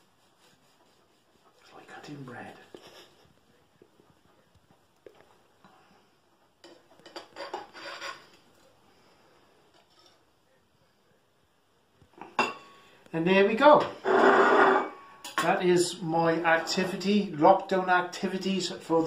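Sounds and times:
knife scraping china plate: 0:07.1 - 0:08.4, 0:14.0 - 0:15.3.

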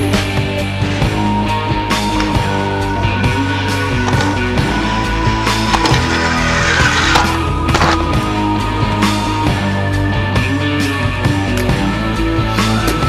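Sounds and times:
rock music: 0:00.0 - 0:13.0
inline skates rolling and knocking: 0:02.0 - 0:09.3.

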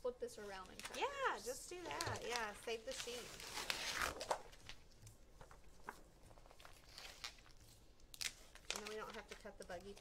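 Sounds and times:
vinyl sheet rustling: 0:00.4 - 0:10.0.

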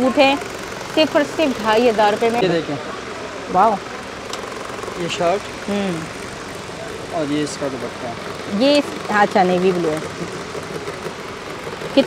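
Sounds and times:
steady background din: 0:00.0 - 0:12.0.

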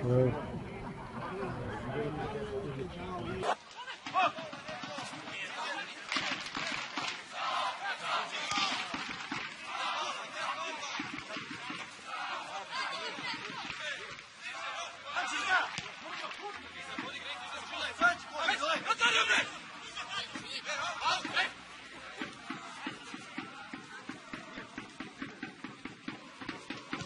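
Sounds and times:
football crowd shouting: 0:01.0 - 0:27.0.

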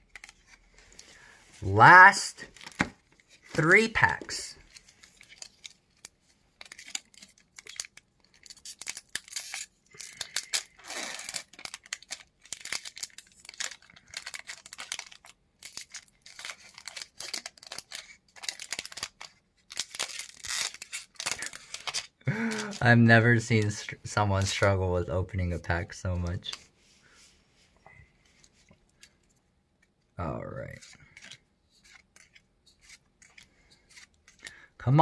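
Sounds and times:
foil wrapper tearing and crinkling: 0:05.1 - 0:22.8.

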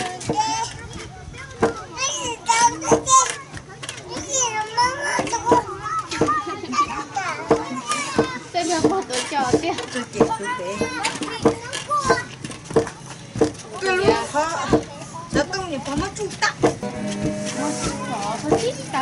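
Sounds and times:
children chattering: 0:00.0 - 0:19.0
pestle thudding in mortar: 0:07.4 - 0:18.8.

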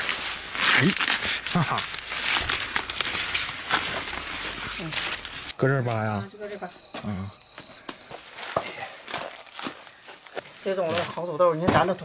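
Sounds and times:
corn leaves rustling: 0:00.0 - 0:06.0, 0:08.2 - 0:11.6.

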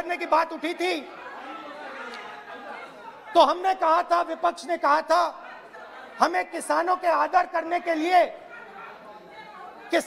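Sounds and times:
background chatter of voices: 0:00.0 - 0:10.0.

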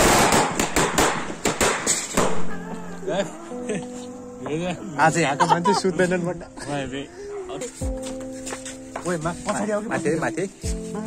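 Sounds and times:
firecrackers hissing and banging: 0:00.0 - 0:02.6.

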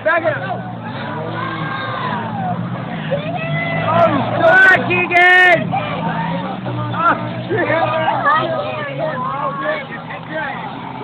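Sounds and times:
race car engines droning: 0:00.0 - 0:11.0
spectators shouting: 0:00.0 - 0:11.0.

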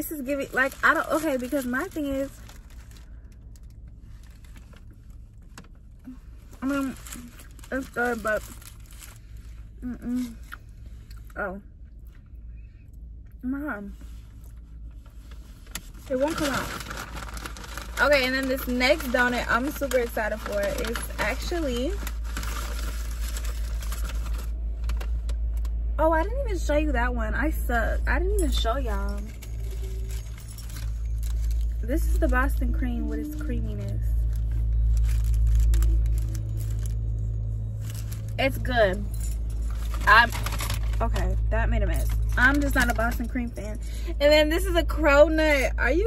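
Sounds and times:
tissue paper crinkling: 0:00.0 - 0:03.1, 0:06.6 - 0:09.5, 0:15.2 - 0:25.3, 0:28.9 - 0:38.7
car cabin rumble: 0:13.4 - 0:46.0.

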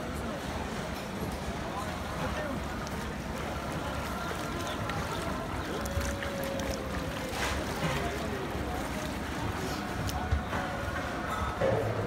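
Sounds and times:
crowd voices: 0:00.0 - 0:12.0
running water: 0:00.0 - 0:12.0
bare feet splashing in water: 0:02.0 - 0:11.3.

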